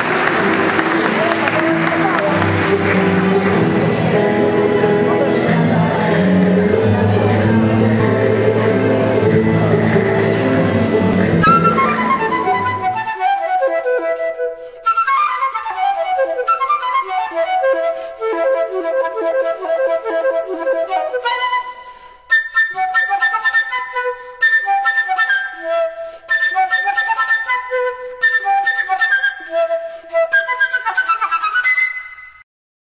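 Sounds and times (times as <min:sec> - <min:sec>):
flute playing quick runs: 0:10.3 - 0:32.4.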